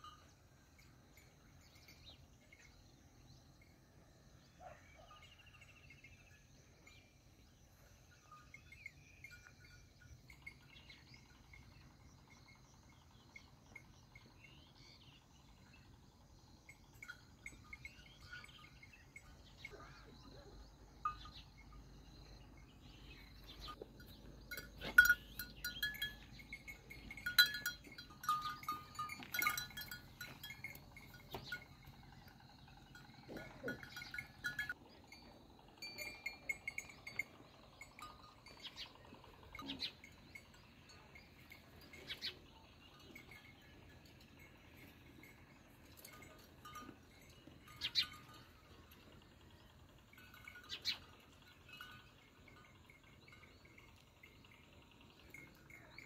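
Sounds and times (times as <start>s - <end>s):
bell-like clinks: 22.8s - 56.0s.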